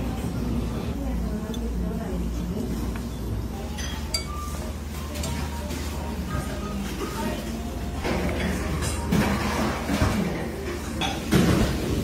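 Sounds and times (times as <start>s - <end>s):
tableware clinking: 3.6s - 5.5s, 10.8s - 11.7s.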